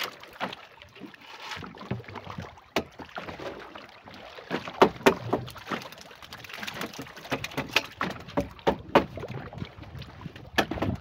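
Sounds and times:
water lapping at hull: 0:00.0 - 0:11.0
knocks on wooden canoe: 0:02.7 - 0:03.1, 0:04.5 - 0:05.8, 0:06.8 - 0:09.3, 0:10.5 - 0:11.0
wind on microphone: 0:09.0 - 0:11.0.

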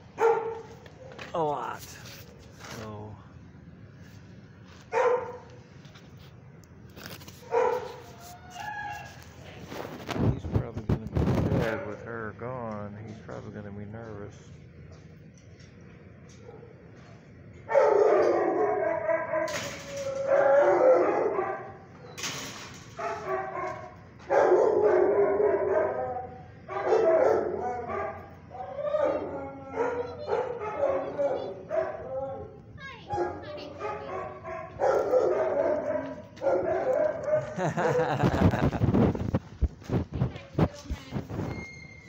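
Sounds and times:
dog barking and howling: 0:07.4 - 0:09.2, 0:17.7 - 0:22.1, 0:23.0 - 0:38.2.

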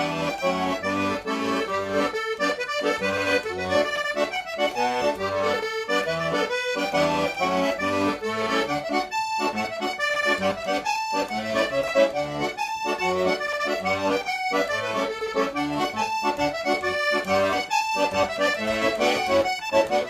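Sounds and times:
accordion playing: 0:00.0 - 0:20.0.

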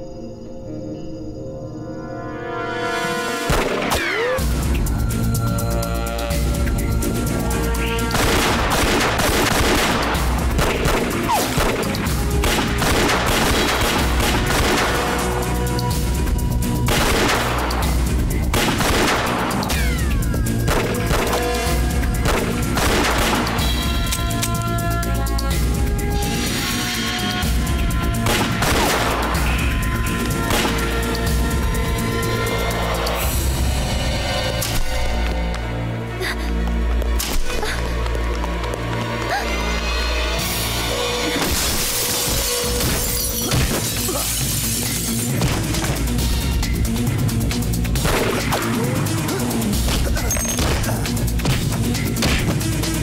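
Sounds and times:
tense background score: 0:00.0 - 0:53.0
gunshots: 0:03.4 - 0:04.5, 0:08.0 - 0:15.6, 0:16.8 - 0:23.9, 0:28.1 - 0:29.7, 0:30.4 - 0:31.1, 0:48.0 - 0:53.0
heavy gun blasts: 0:28.2 - 0:29.4
glass shattering: 0:41.4 - 0:45.2.

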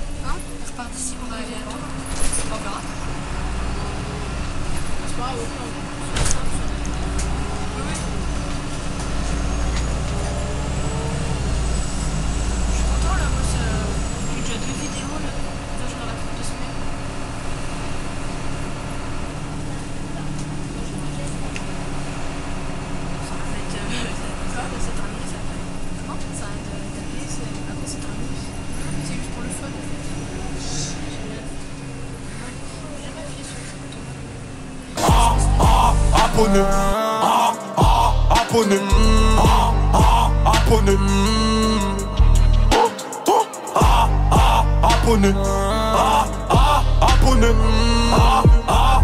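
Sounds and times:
road rumble: 0:00.0 - 0:42.8, 0:43.8 - 0:49.0
bus diesel engine drone: 0:00.0 - 0:49.0.

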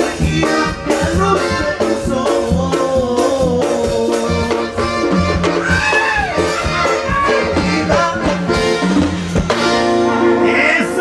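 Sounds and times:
drum kit beating: 0:00.0 - 0:11.0.

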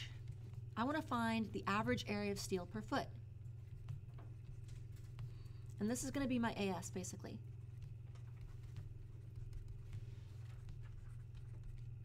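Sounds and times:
low steady hum: 0:00.0 - 0:12.0
stylus scratching on tablet screen: 0:00.1 - 0:12.0.

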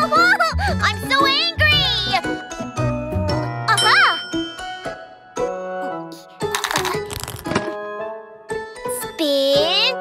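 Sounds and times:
bright cartoon music with chimes: 0:00.0 - 0:10.0.

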